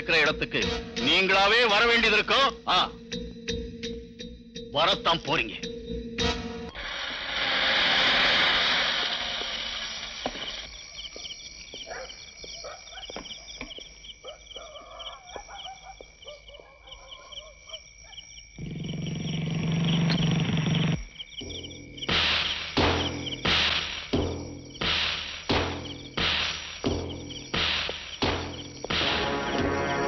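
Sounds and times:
high repeating chirps: 0.0s - 6.3s, 20.0s - 30.0s
loud rushing noise: 6.8s - 10.2s.

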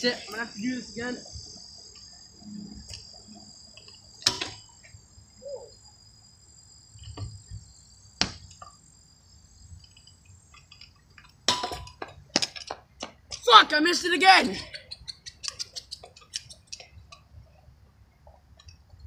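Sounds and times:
insects trilling: 0.0s - 19.0s
scattered clicks: 15.0s - 17.2s.

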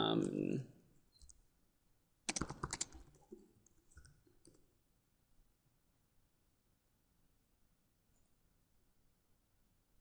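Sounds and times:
keyboard keys clicking: 2.3s - 3.1s.

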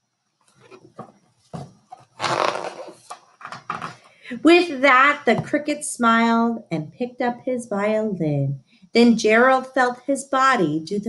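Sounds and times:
book rustling: 0.5s - 4.1s
book knocks: 0.8s - 2.1s.

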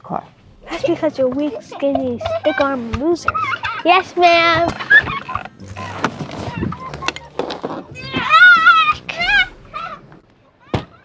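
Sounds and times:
high wavering cry: 0.5s - 10.2s.

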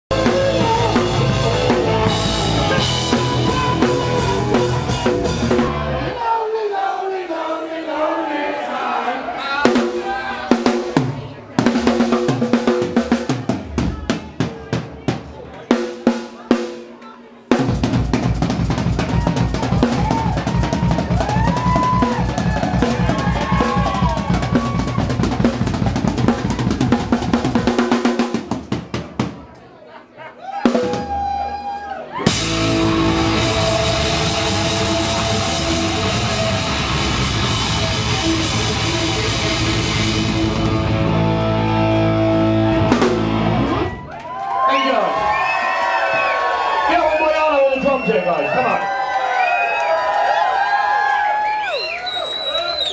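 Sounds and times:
rock drum solo: 0.1s - 6.1s, 9.6s - 29.5s, 30.6s - 44.0s
rock band holding a chord: 0.1s - 6.2s, 32.2s - 43.9s.

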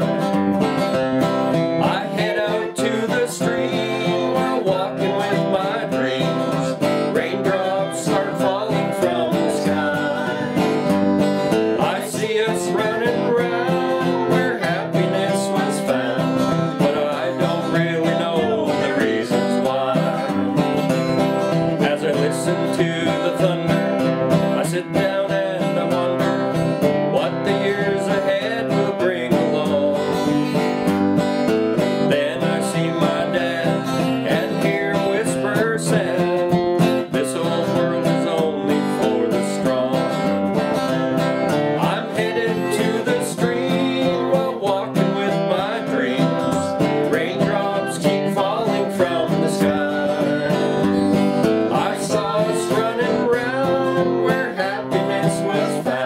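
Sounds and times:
acoustic guitar country song: 0.0s - 56.0s.

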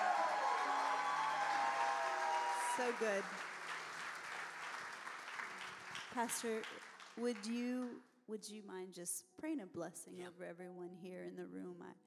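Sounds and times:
audience applauding and cheering: 0.0s - 7.5s.

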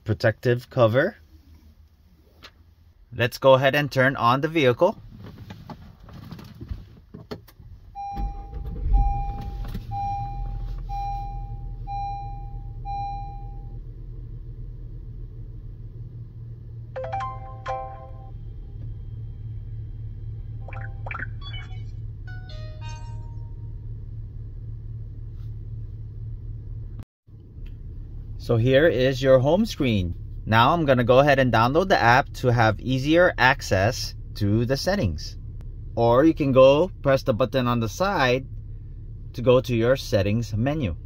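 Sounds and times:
car engine starting and idling: 0.0s - 41.0s
car chime: 17.0s - 18.3s
rising startup jingle: 17.0s - 18.4s, 20.6s - 23.8s
electronic tones: 20.6s - 23.4s.

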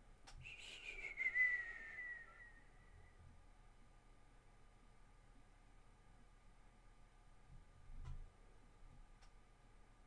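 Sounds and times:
person whistling falling note: 0.4s - 3.2s.

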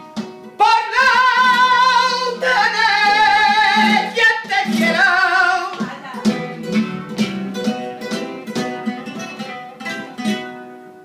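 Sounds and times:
flamenco guitar: 0.0s - 11.0s
man singing flamenco cry: 0.4s - 9.2s.

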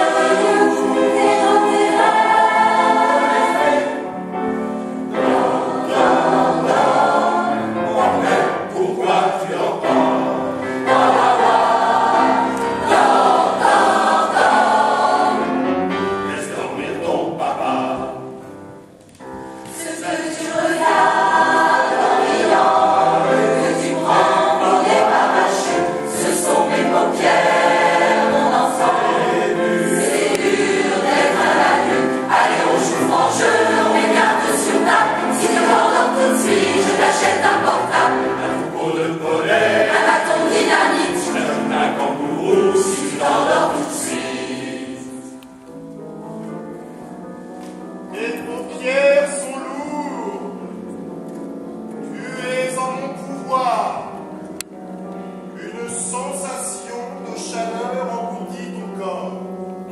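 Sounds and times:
choir singing a lullaby: 0.0s - 18.5s, 19.7s - 45.5s.

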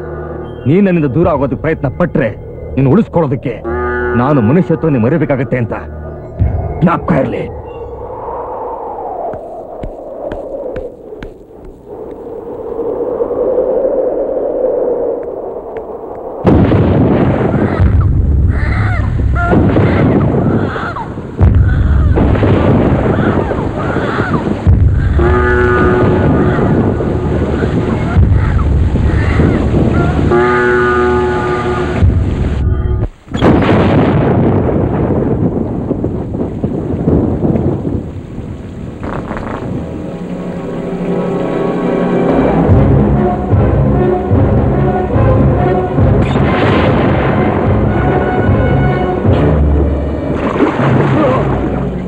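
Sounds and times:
thunder claps and rumbling: 6.4s - 40.4s, 42.3s - 52.0s
rain hiss: 8.1s - 42.8s
dramatic music tone: 39.7s - 52.0s.

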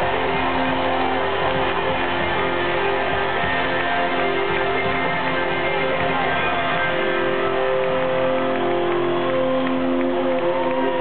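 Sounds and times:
rock band sustained chord: 0.0s - 11.0s.

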